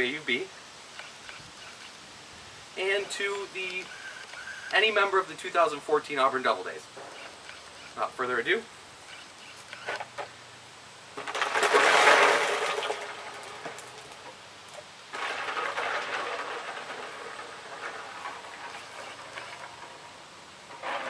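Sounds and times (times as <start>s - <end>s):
ice and water pouring: 11.2s - 14.4s, 15.0s - 21.0s
ice water sloshing and rattling: 11.2s - 21.0s.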